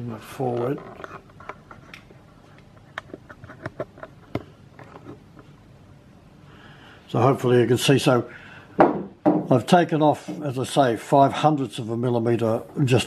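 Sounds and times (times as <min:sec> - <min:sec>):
faint workshop room tone: 0:00.0 - 0:13.0.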